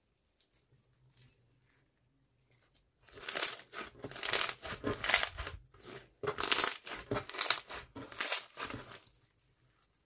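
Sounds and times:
crunchy slime squishes: 0:01.5 - 0:10.0.

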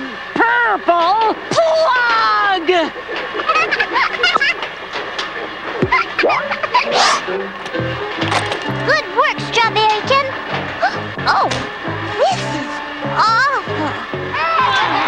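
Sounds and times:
cartoon music: 0:05.8 - 0:07.0, 0:08.7 - 0:15.0
sliding cartoon sound effects: 0:05.8 - 0:07.4.

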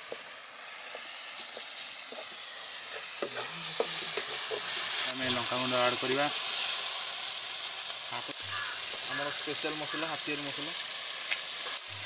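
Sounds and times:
food sizzling in a pan: 0:00.0 - 0:12.0
metal spatula scraping a pan: 0:02.3 - 0:05.7.

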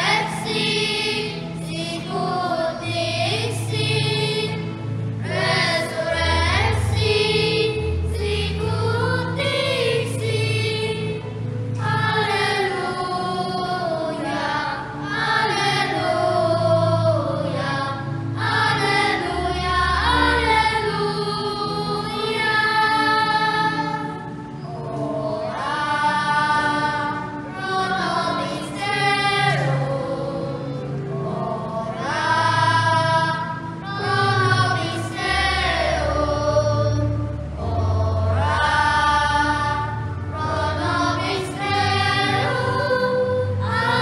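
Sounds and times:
children's choir singing a hymn: 0:00.0 - 0:44.0.

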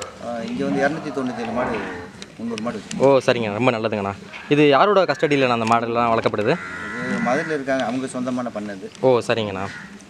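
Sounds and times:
calf bawling: 0:00.0 - 0:02.2, 0:06.5 - 0:07.8.

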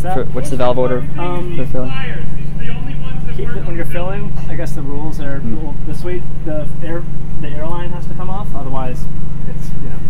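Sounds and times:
low hum and rumble: 0:00.0 - 0:10.0
people talking: 0:00.0 - 0:10.0.

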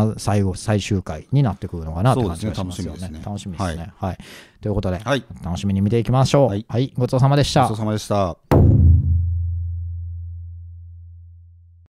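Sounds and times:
low bass note ringing: 0:08.5 - 0:11.5.

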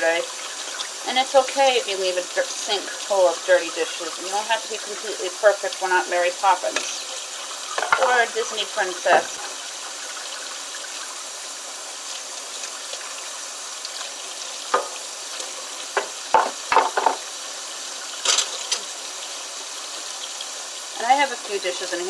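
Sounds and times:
tap water running into a sink: 0:00.0 - 0:22.0
dishes and cutlery clinking: 0:07.7 - 0:08.2, 0:16.0 - 0:17.3, 0:18.2 - 0:18.9.

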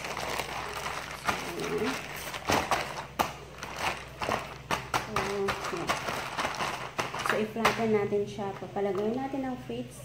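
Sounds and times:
plastic bag crinkling: 0:00.0 - 0:09.3.

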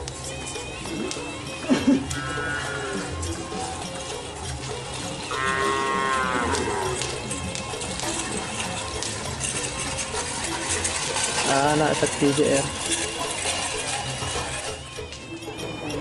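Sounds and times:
cattle mooing: 0:02.1 - 0:03.3, 0:05.2 - 0:07.2
clattering: 0:06.6 - 0:16.0.

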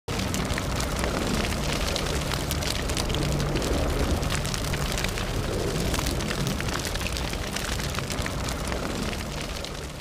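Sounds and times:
deep rumble: 0:00.1 - 0:10.0
dense crackling: 0:00.1 - 0:10.0.

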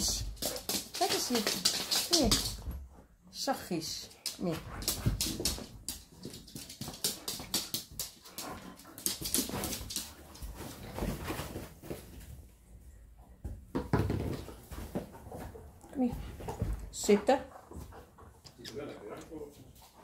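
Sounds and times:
dog rustling against couch: 0:09.4 - 0:12.4
dog breathing and sniffing: 0:15.1 - 0:20.0.

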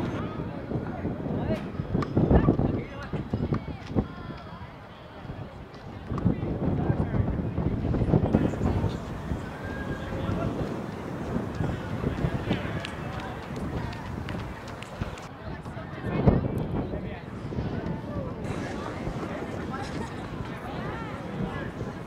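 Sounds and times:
indistinct chatter of voices: 0:00.0 - 0:22.0
outdoor background noise: 0:00.0 - 0:22.0.

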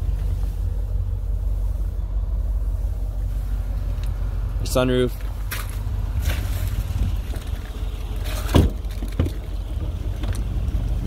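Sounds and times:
steady low rumble: 0:00.0 - 0:11.0
car doors clicking and knocking: 0:08.4 - 0:10.4.

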